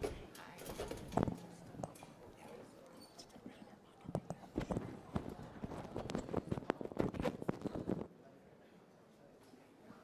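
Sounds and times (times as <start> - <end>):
faint murmured talk: 0.0 - 10.0.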